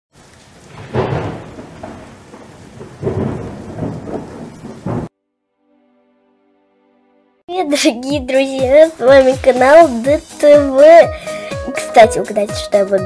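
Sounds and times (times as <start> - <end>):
rain: 0.1 - 5.1, 8.5 - 12.5
rumbling thunder: 0.3 - 5.1.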